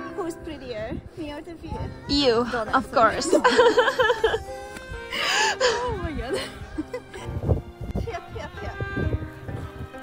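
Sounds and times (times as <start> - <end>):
woman laughing: 3.2 - 4.6, 5.2 - 7.4.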